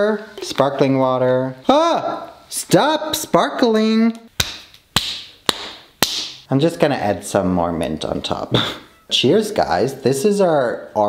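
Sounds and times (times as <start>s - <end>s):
sharp claps: 4.4s - 6.5s.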